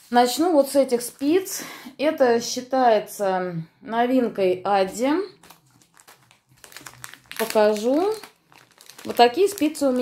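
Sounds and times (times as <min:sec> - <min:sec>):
plastic bag crinkling: 0:04.9 - 0:10.0.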